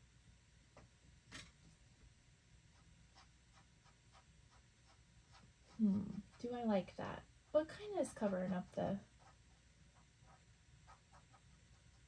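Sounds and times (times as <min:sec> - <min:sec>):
paintbrush dabbing on canvas: 0:02.7 - 0:06.8.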